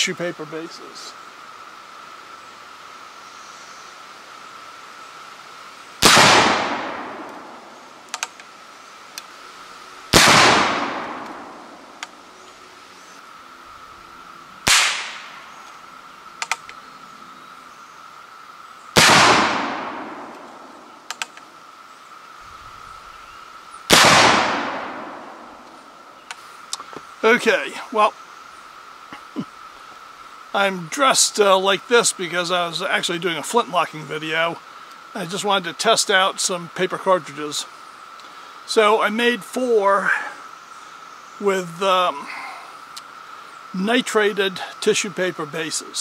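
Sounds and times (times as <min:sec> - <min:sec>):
rifle shots: 0:06.0 - 0:07.6, 0:10.1 - 0:11.8, 0:14.6 - 0:15.4, 0:19.0 - 0:20.7, 0:23.9 - 0:25.5.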